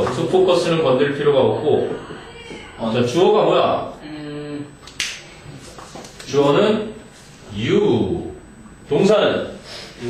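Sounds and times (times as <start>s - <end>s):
sharp click: 4.9s - 5.2s.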